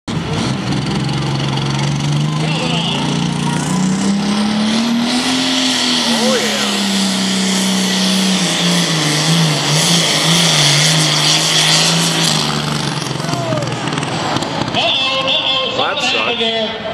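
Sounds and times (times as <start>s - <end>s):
diesel tractor engine at full throttle: 0.1s - 16.3s.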